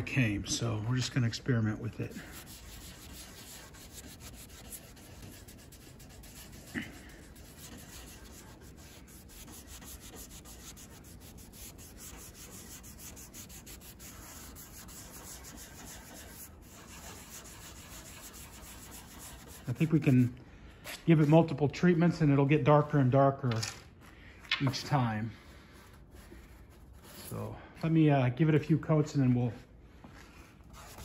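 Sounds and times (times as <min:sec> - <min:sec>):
cloth wiping on wood: 0:01.7 - 0:20.3, 0:30.6 - 0:31.0.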